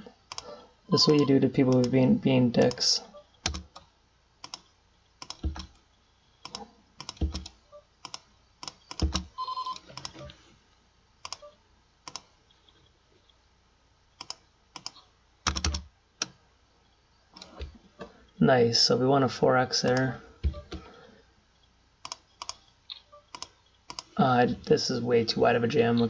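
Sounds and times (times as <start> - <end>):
computer keyboard keystrokes: 3.4 - 3.8, 5.2 - 5.7, 6.4 - 9.3, 14.2 - 15.8.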